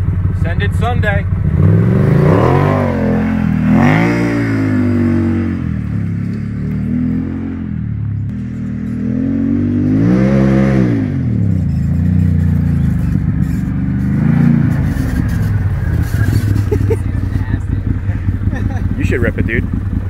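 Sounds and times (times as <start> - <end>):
engine revving: 0.0 - 20.0.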